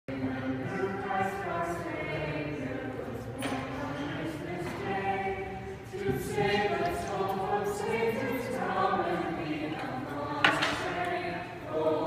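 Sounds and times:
group singing in chorus: 0.1s - 12.0s.

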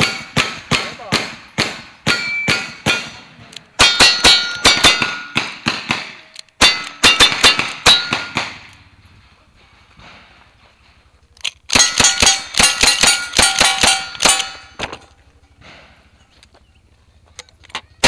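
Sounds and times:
steel target clanging: 1.7s - 5.6s, 6.6s - 8.6s, 11.7s - 14.8s
rifle gunshots: 3.8s - 8.7s, 11.7s - 14.8s.

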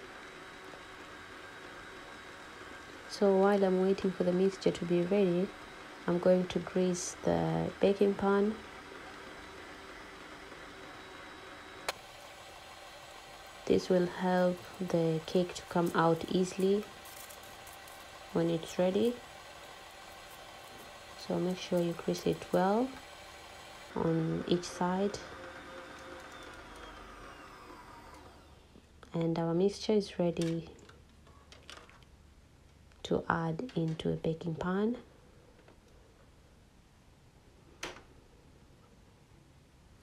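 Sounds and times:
stand mixer whirring: 0.0s - 28.7s.

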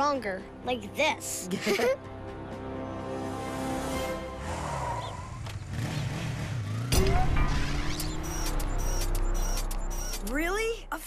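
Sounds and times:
vehicle engine wavering pitch: 6.7s - 10.3s.

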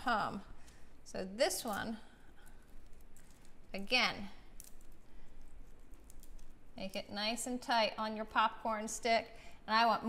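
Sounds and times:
popcorn ball crackling when squeezed: 2.5s - 7.2s.

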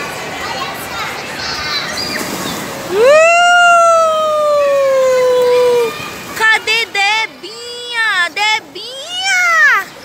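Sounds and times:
child squealing: 2.9s - 6.0s
child screaming playfully: 2.9s - 6.1s.

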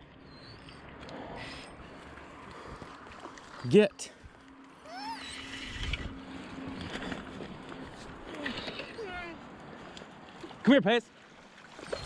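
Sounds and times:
river water running: 0.0s - 12.0s
dog whining: 4.8s - 5.7s.

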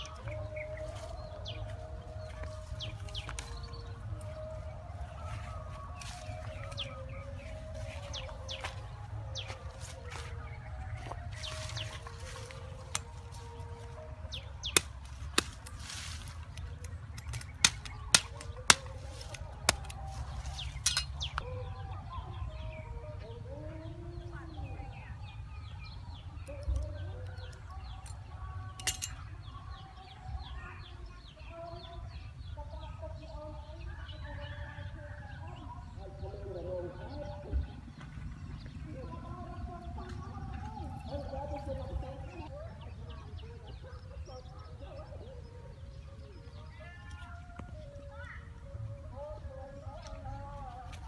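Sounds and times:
birds chirping: 0.0s - 51.0s
cleaver chopping bamboo: 14.6s - 16.1s, 17.1s - 20.0s.

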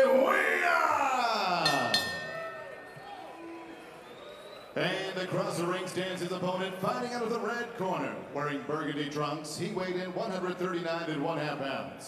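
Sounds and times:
announcer calling a name: 0.0s - 2.2s.

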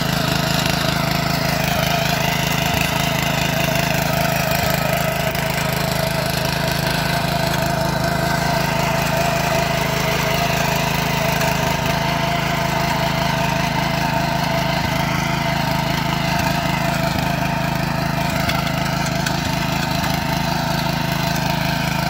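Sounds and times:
small tiller engine running: 0.0s - 22.0s.

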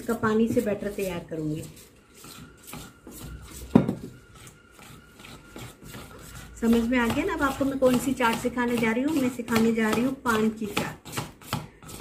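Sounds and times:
hand mixing batter in steel bowl: 0.0s - 12.0s.

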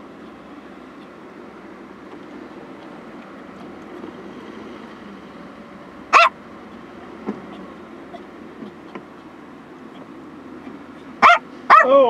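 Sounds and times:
car cabin hum: 0.0s - 12.0s
dog yelping: 6.1s - 6.4s, 11.2s - 11.9s.

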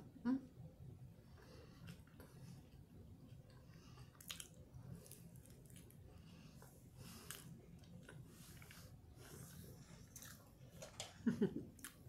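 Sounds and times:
faint chewing: 1.3s - 12.0s.

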